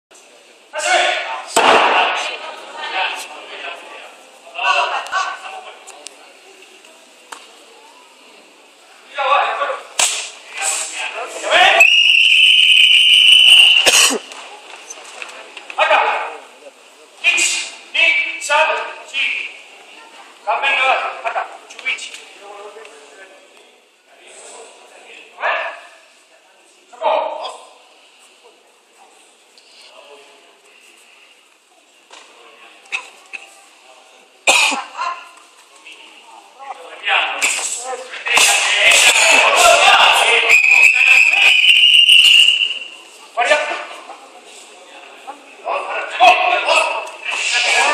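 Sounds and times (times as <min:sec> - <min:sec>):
sharp slap-like crack: 0:01.6 - 0:02.2, 0:10.0 - 0:10.4, 0:37.4 - 0:39.2
long high whistle blast: 0:11.8 - 0:13.8.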